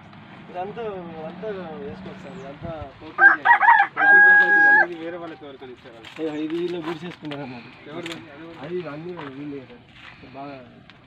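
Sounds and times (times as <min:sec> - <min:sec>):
people talking quietly: 0:00.5 - 0:11.0
rooster crowing: 0:03.2 - 0:04.9.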